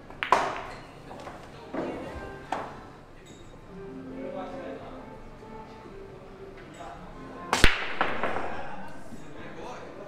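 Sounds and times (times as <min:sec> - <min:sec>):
cue tip striking ball: 0:00.2 - 0:00.7, 0:07.5 - 0:09.7.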